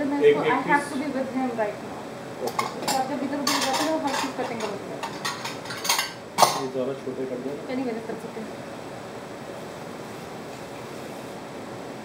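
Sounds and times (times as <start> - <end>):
dishes and utensils clinking: 2.4 - 6.7.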